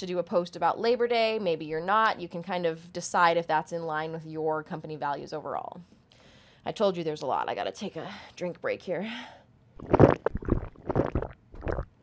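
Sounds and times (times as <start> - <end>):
person gulping: 9.8 - 12.0.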